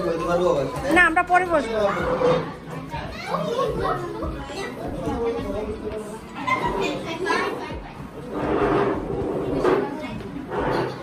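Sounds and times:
overlapping chatter of voices: 0:00.0 - 0:11.0.

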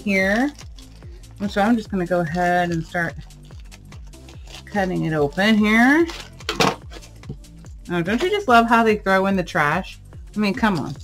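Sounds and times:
quiet background music: 0:00.0 - 0:11.0
scissors cutting plastic mailer: 0:00.2 - 0:07.2, 0:10.5 - 0:11.0.

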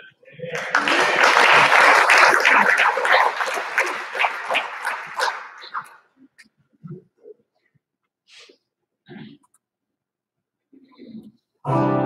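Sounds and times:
crowd applauding: 0:00.4 - 0:06.0.

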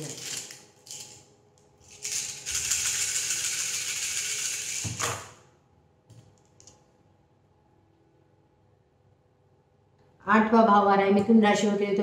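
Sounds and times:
small pieces rattled in hands: 0:00.0 - 0:01.2, 0:01.8 - 0:04.8
pieces thumping onto table: 0:04.8 - 0:05.4.

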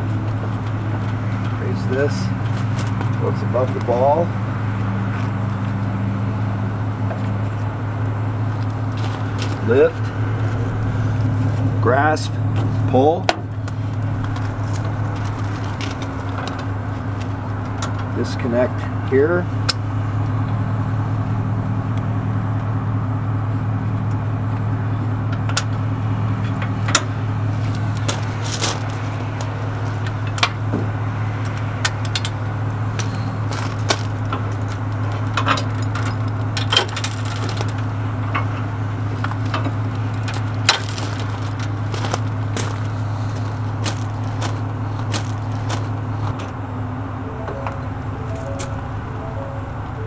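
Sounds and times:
steady low hum: 0:00.0 - 0:50.0
vehicle engine idling: 0:00.0 - 0:50.0
metal chains clinking and rattling: 0:33.0 - 0:45.9.

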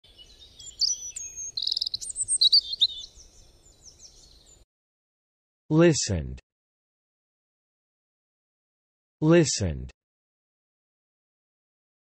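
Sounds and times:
bird trill: 0:00.1 - 0:04.6
birds chirping and whistling: 0:00.1 - 0:04.6.

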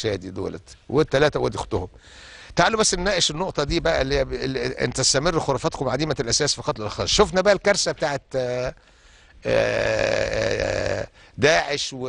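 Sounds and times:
man saying long aaah: 0:09.4 - 0:11.1.

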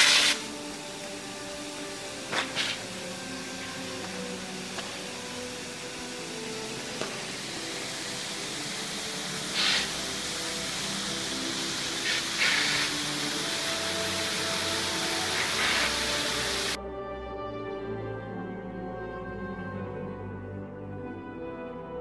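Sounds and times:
fountain water rushing: 0:00.0 - 0:16.8
faint slow background music: 0:00.0 - 0:22.0.

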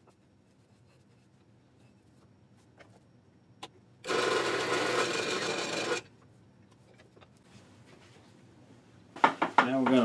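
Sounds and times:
drill press boring into wood: 0:04.0 - 0:06.1.

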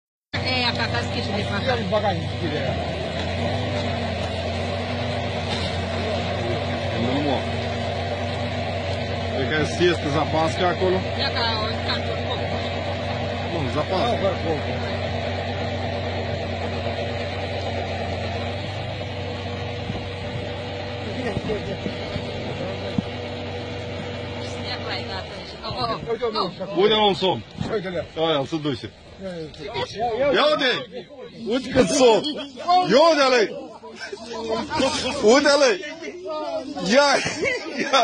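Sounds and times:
crane engine humming: 0:00.4 - 0:38.0
man talking: 0:26.0 - 0:38.0.

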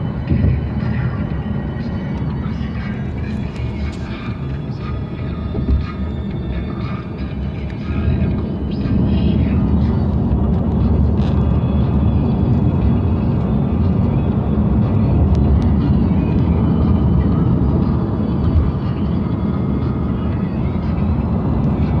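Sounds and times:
road and engine rumble in cabin: 0:00.0 - 0:22.0.

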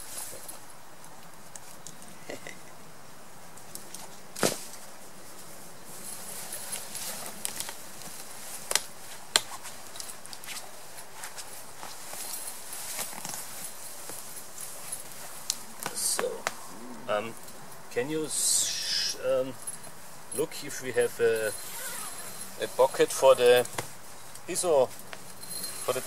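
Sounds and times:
hammock fabric rustling: 0:00.0 - 0:26.0.

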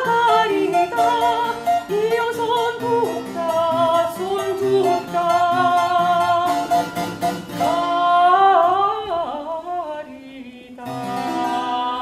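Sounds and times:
operatic singing voice: 0:00.0 - 0:06.8, 0:07.6 - 0:12.0.

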